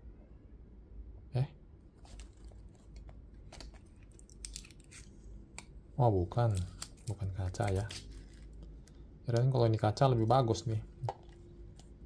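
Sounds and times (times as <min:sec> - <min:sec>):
plastic film peeling crinkle: 0:02.0 - 0:05.7, 0:06.3 - 0:09.5.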